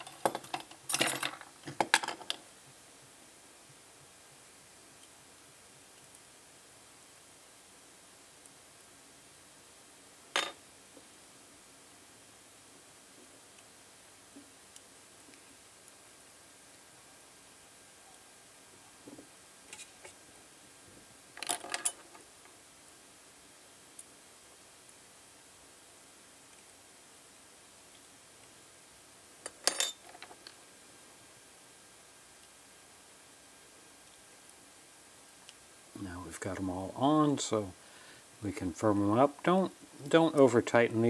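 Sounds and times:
metal tweezers clattering on tray: 0.0s - 2.4s.

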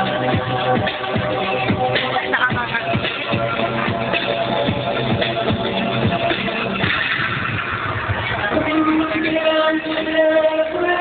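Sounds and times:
electronic dance beat: 0.0s - 11.0s.

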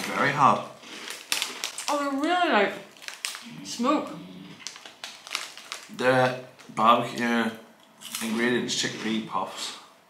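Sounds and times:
crunching hard snacks: 0.0s - 2.3s, 2.9s - 3.6s, 4.6s - 6.8s
crinkly foil bag: 0.0s - 3.6s, 4.5s - 6.7s.

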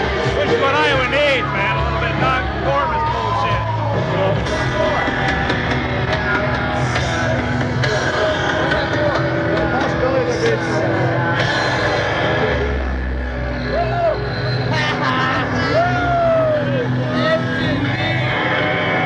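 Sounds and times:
loud live rock music: 0.0s - 19.0s
people's voices: 0.0s - 19.0s.

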